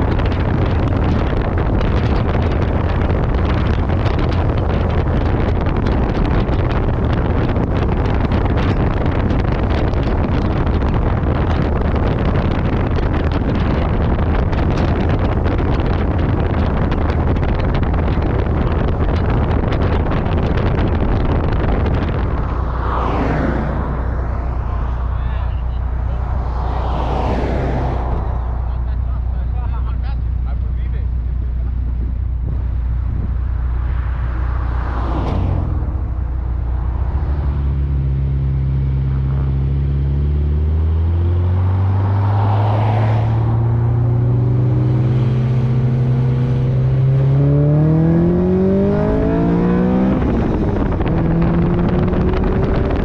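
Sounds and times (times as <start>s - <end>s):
car engine idling and revving: 0.0s - 53.0s.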